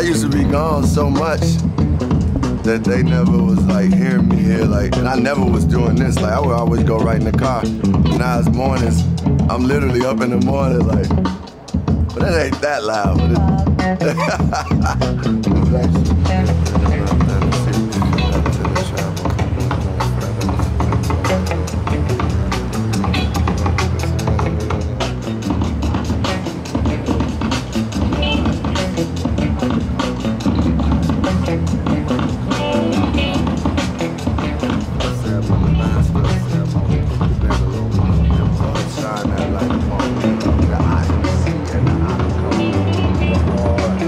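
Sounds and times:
music with heavy bass: 0.0 - 44.0.

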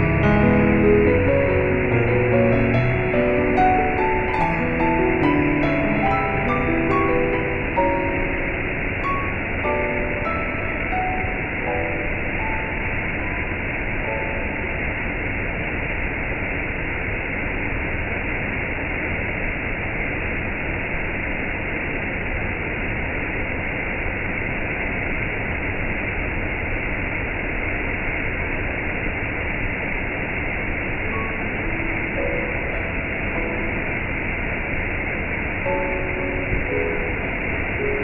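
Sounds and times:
faint musical notes: 0.0 - 15.0, 35.5 - 38.0.

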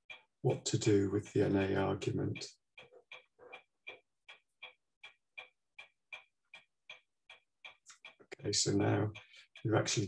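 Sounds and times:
faint evenly paced clicking: 0.0 - 10.0.

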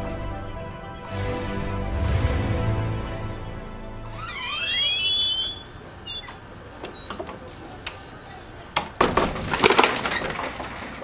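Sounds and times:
door hinges creaking: 4.1 - 11.0.

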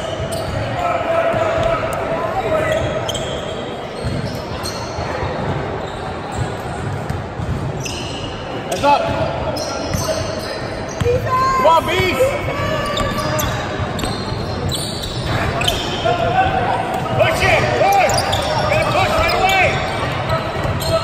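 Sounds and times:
sneaker squeaks: 0.0 - 1.8, 2.4 - 21.0
voices: 8.7 - 21.0.

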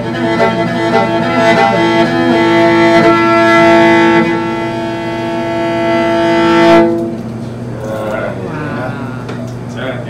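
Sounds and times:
horsehead fiddle long bowed note: 0.0 - 7.3.

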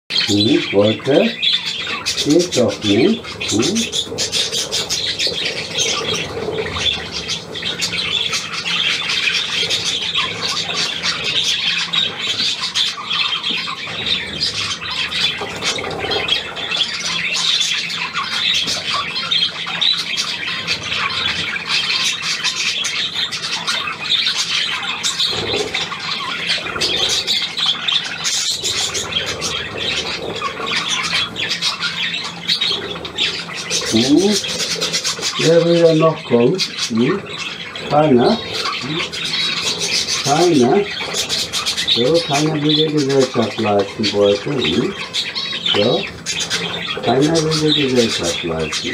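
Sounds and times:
budgerigars chattering: 0.1 - 48.9.

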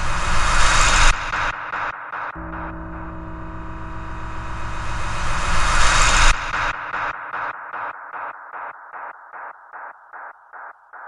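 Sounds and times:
rising noise swell: 2.4 - 7.1
electronic music: 2.4 - 7.2
pulsing beat: 2.4 - 7.5.

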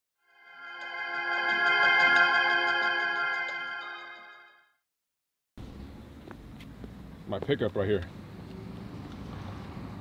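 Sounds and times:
road traffic: 5.6 - 10.0.

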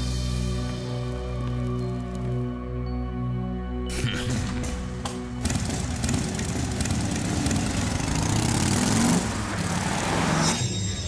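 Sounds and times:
background music: 0.0 - 11.0
cartoon motorcycle engines revving: 5.1 - 10.6.

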